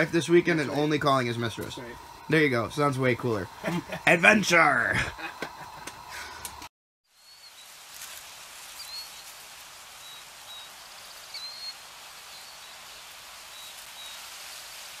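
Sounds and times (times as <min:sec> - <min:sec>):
outdoor ambience hiss: 0:00.0 - 0:15.0
faint high bird chirps: 0:07.1 - 0:07.8, 0:08.8 - 0:09.3, 0:10.0 - 0:14.3.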